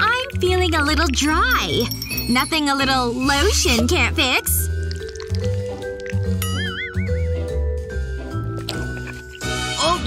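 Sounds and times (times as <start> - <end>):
light background music with bass: 0.0 - 10.0.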